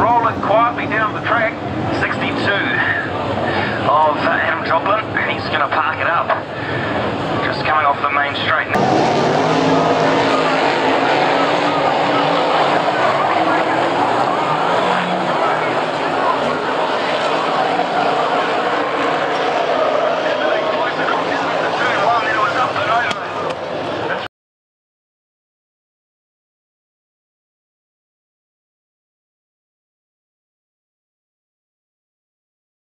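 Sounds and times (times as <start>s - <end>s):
race car engines passing: 0.0s - 24.3s.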